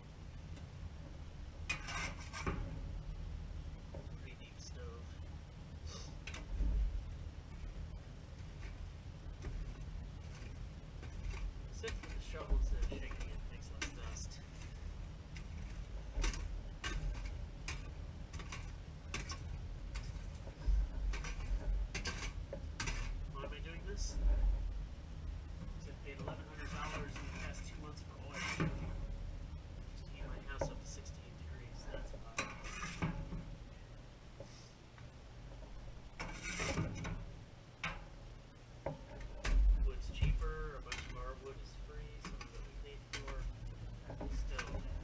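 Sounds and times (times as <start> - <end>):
metal shovel scraping in sifter: 1.7 - 2.7, 9.4 - 24.3, 25.8 - 29.0, 30.0 - 33.4, 36.2 - 37.3.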